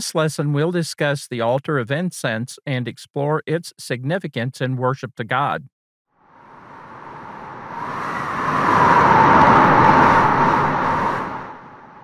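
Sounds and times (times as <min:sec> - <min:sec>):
whoosh sound effect: 0:06.6 - 0:12.0.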